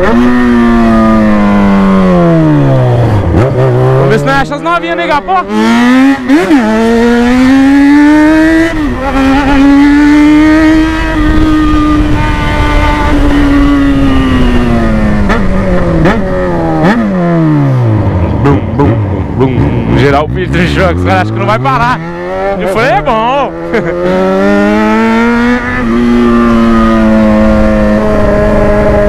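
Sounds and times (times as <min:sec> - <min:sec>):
motorcycle engine accelerating: 0:00.0 - 0:29.0.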